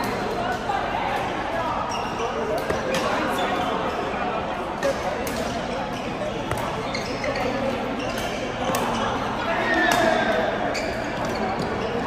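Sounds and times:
rackets hitting shuttlecock: 0:06.3 - 0:06.8, 0:08.1 - 0:09.1.

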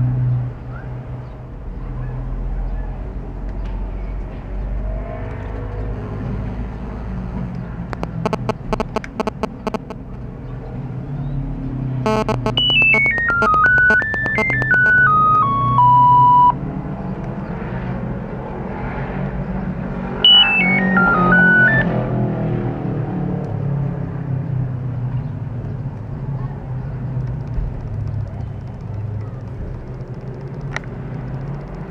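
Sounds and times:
monophonic phone ringtone beeps: 0:08.0 - 0:10.0, 0:12.1 - 0:16.6, 0:20.2 - 0:21.8.

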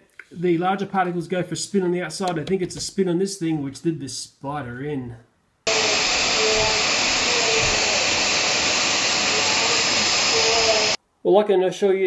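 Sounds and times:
stick vacuum running: 0:05.7 - 0:11.0.

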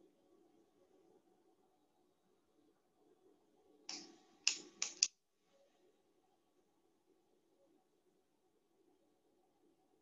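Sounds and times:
computer keyboard taps: 0:03.9 - 0:05.1.

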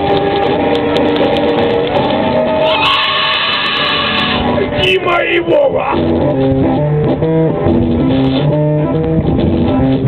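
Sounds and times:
live music over loudspeakers: 0:00.0 - 0:10.0.

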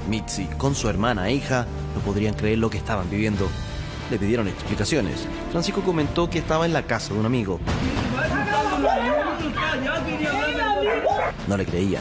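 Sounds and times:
people arguing: 0:07.8 - 0:11.4.

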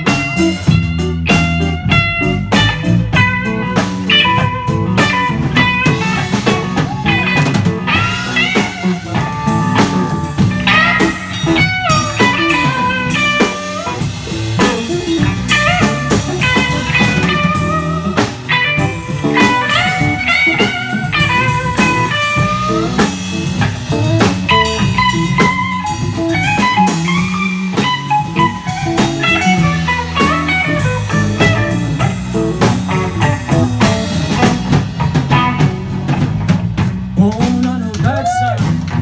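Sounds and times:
bass guitar: 0:00.0 - 0:39.0
drum kit steady beat: 0:00.0 - 0:39.0
electric guitar lead with bent notes: 0:00.0 - 0:39.0.

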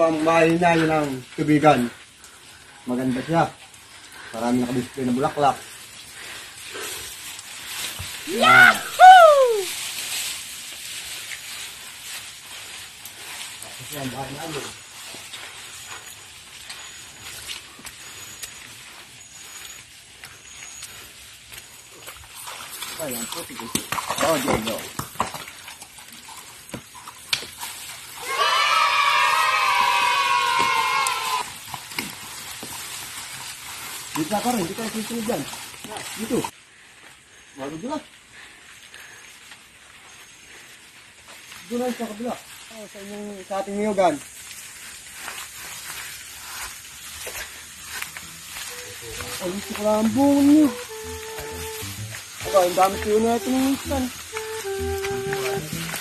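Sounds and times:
person calling out loudly: 0:08.3 - 0:09.7, 0:48.8 - 0:55.8
steady hiss: 0:32.2 - 0:56.0
long falling voice-like call: 0:50.5 - 0:52.6.

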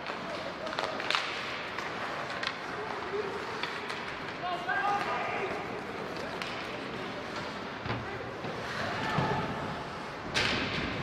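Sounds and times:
ice hockey play and crowd noise: 0:00.0 - 0:11.0.

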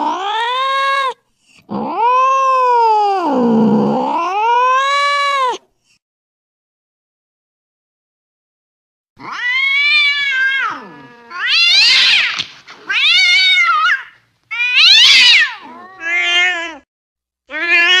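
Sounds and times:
cats yowling in a fight: 0:00.0 - 0:05.6, 0:09.2 - 0:16.8, 0:17.5 - 0:18.0.

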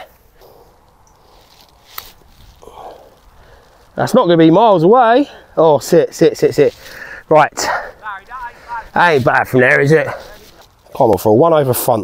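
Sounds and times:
faint outdoor ambience: 0:00.0 - 0:12.0.

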